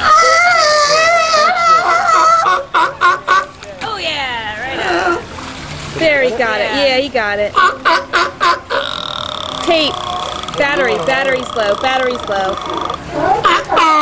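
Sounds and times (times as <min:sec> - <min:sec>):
sea lions barking and honking: 0:00.0 - 0:03.6, 0:04.6 - 0:14.0
water splashing: 0:00.0 - 0:14.0.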